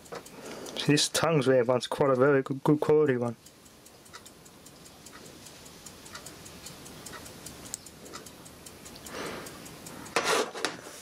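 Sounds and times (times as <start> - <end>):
clock ticking: 0.0 - 11.0
room noise: 3.5 - 11.0.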